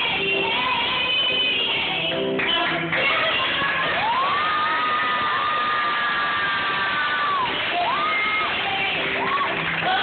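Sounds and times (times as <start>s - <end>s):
electric keyboard: 0.0s - 10.0s
woman singing live: 0.0s - 10.0s
audience cheering: 3.8s - 10.0s.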